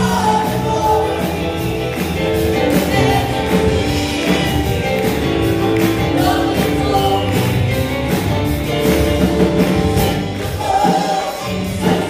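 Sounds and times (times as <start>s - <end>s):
choir singing gospel in harmony: 0.0s - 8.0s, 9.7s - 12.0s
bass guitar: 0.0s - 12.0s.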